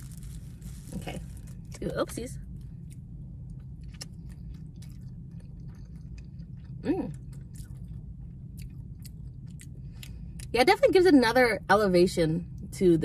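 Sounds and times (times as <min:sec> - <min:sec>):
steady low hum: 0:00.0 - 0:13.0
close-mouthed chewing: 0:02.8 - 0:10.5.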